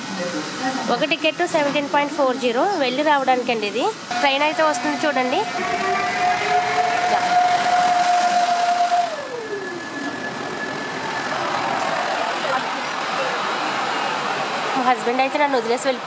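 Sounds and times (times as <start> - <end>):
train coaches rolling past: 0.0 - 16.0
electric train whine: 0.5 - 16.0.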